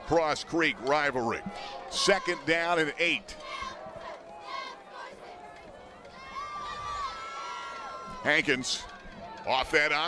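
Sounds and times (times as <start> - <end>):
distant voices shouting: 0.0 - 10.0
long drawn-out yell: 6.1 - 8.4.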